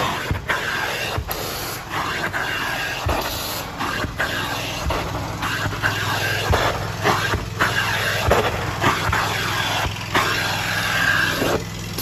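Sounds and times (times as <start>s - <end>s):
carpet cleaning machine hissing: 0.0s - 12.0s.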